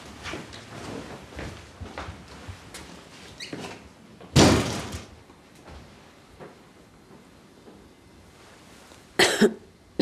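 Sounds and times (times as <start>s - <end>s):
door shutting hard: 4.4s - 5.1s.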